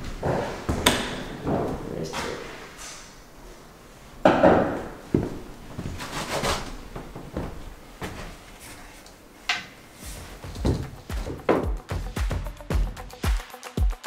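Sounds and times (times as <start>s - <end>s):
music with a beat: 10.4s - 14.0s
knocks and thunks: 10.5s - 11.8s.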